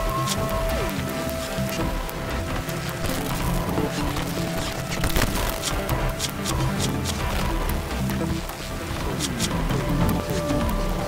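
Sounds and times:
crackling clicks: 0.0 - 11.0.

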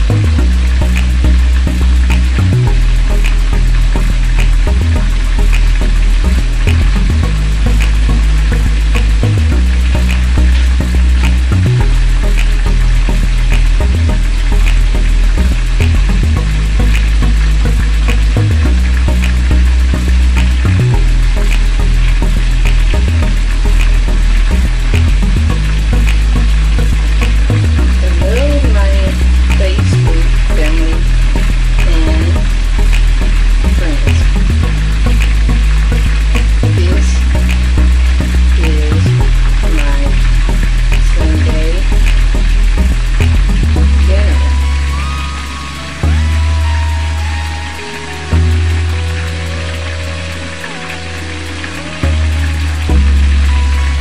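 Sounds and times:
music with heavy bass line: 0.0 - 54.0.

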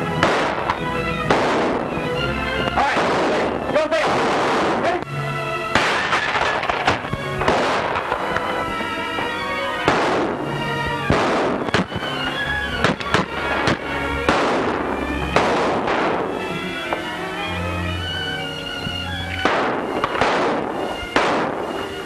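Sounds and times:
dramatic film score: 0.0 - 22.0
gunshots: 0.1 - 2.2, 2.8 - 5.0, 5.7 - 9.0, 9.6 - 17.1, 19.3 - 22.0.

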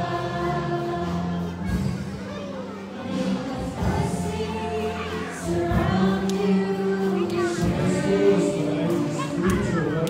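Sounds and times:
group singing a hymn: 0.0 - 1.8, 3.0 - 10.0
worship band accompaniment: 0.0 - 10.0.

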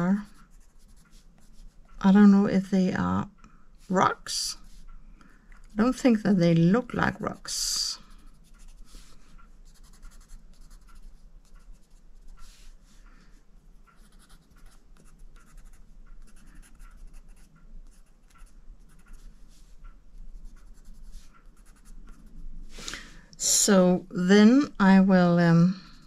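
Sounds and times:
pencil scratching on paper: 0.1 - 2.0, 6.8 - 13.0, 14.0 - 22.4.

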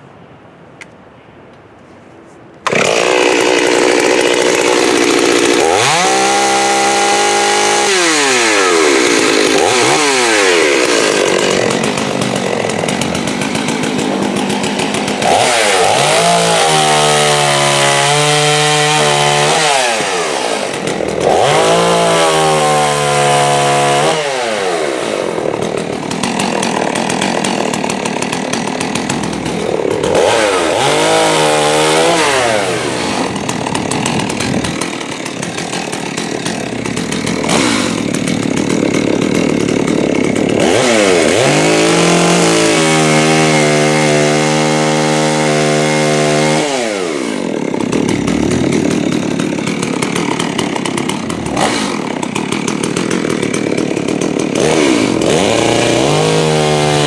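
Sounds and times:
chainsaw revving and cutting wood: 2.6 - 57.0.

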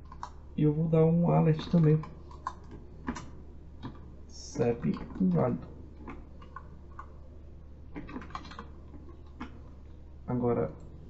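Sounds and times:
typing on computer keyboard: 0.0 - 0.4.

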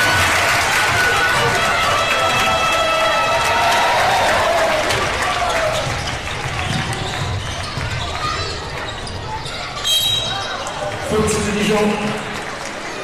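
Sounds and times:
crowd noise: 0.0 - 13.0
referee whistle blast: 9.9 - 10.3.

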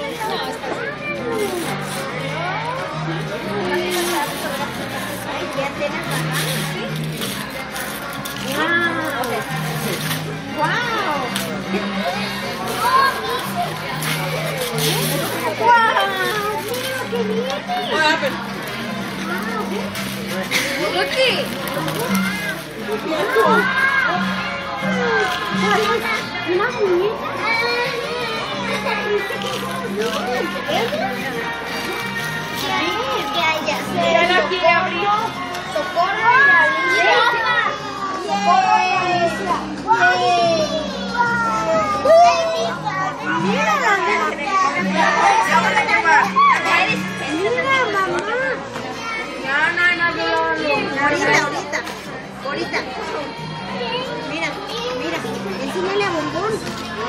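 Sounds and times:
background music: 0.0 - 57.0
children's excited chatter: 0.0 - 57.0
wrapping paper tearing: 1.3 - 2.2, 3.8 - 24.0, 27.7 - 33.9.

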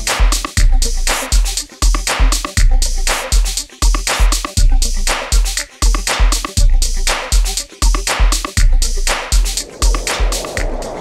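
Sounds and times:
electronic music with kick drum: 0.0 - 11.0
steady rushing noise: 9.4 - 11.0.

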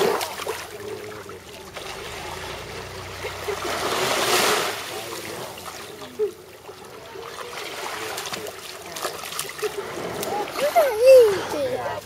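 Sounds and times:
feet wading through water: 0.0 - 12.0.

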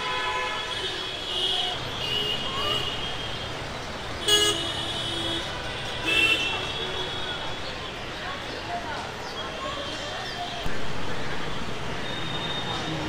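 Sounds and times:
vehicle horns honking: 0.0 - 3.4, 4.2 - 7.6
street traffic noise: 0.0 - 13.0.

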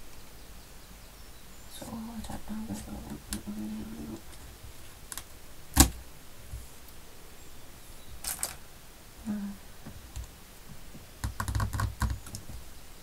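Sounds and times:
clicks and taps of craft pieces: 11.2 - 12.6.

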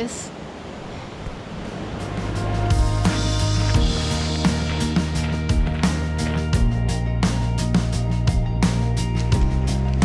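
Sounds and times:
fast-flowing river rushing: 0.0 - 6.5
background music: 1.6 - 10.0.

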